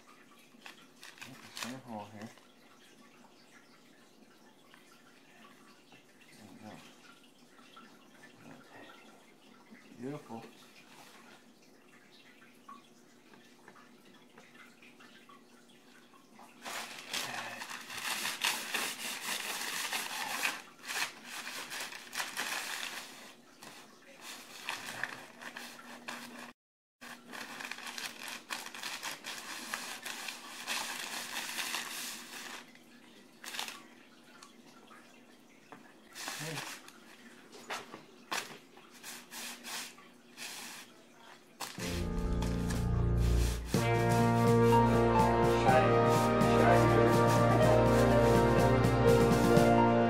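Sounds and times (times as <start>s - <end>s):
paper and plastic rubbing on floor: 16.6s - 32.7s, 36.2s - 36.9s, 38.3s - 41.0s, 41.6s - 49.8s
music: 41.8s - 50.0s.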